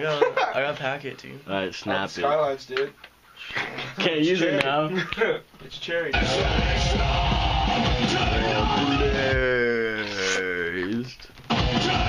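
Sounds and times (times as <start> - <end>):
loud heavy rock music: 6.2 - 9.5, 11.5 - 12.0.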